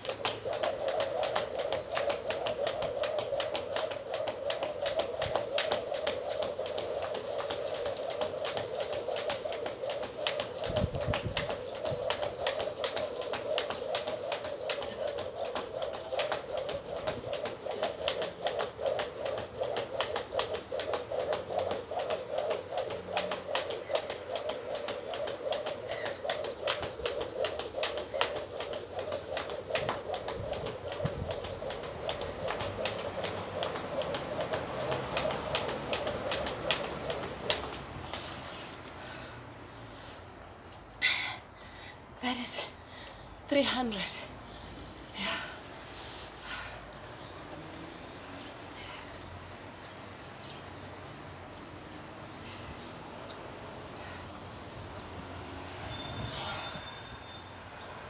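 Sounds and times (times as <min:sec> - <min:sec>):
skipping rope slapping ground: 0:00.0 - 0:38.9
continuous hum: 0:00.0 - 0:47.5.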